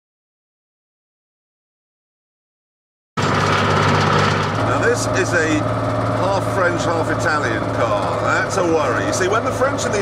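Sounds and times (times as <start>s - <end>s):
car engine running: 3.2s - 10.0s.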